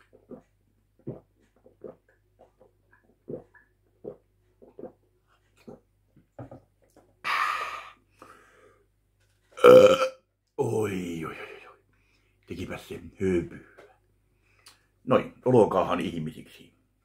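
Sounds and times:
person gulping milk: 0.0s - 8.0s, 9.5s - 10.2s.

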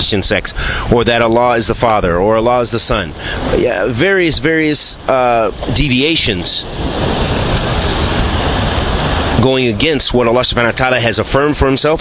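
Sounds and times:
loud steady rumbling with hiss: 0.0s - 12.0s.

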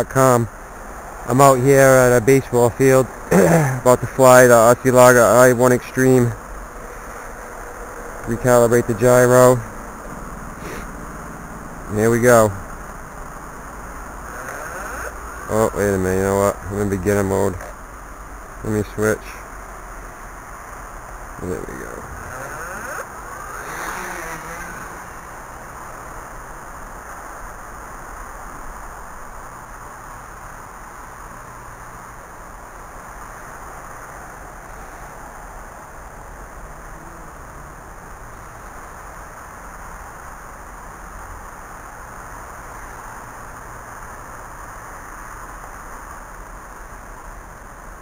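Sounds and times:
quadcopter motors buzzing: 13.7s - 17.9s, 21.4s - 26.7s.

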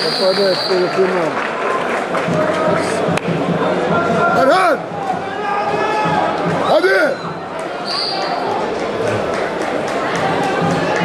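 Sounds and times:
referee's whistle blast: 0.0s - 0.9s, 6.8s - 8.4s
echoing arena crowd: 0.0s - 11.0s.

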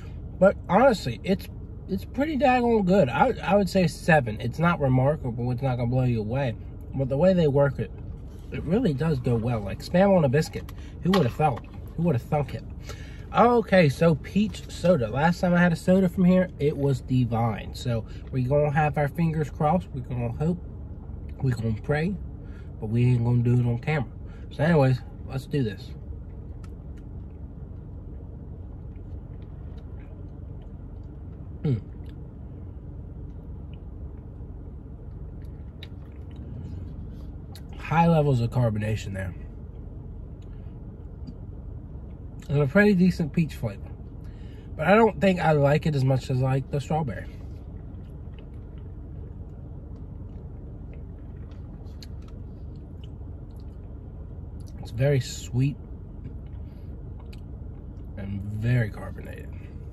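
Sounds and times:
car rumble from inside cabin: 0.0s - 59.9s
mouth clicks and lip smacks: 35.4s - 36.6s.

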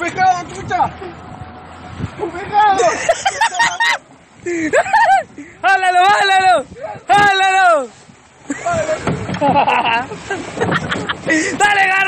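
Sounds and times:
men shouting and laughing: 0.4s - 12.0s.

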